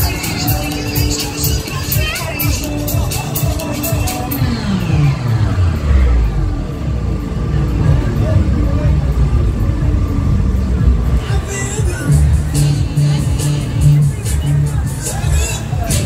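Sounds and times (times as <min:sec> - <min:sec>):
loud techno music: 0:00.0 - 0:16.0
low bass notes: 0:00.0 - 0:16.0
falling pitch sweep: 0:04.0 - 0:07.6.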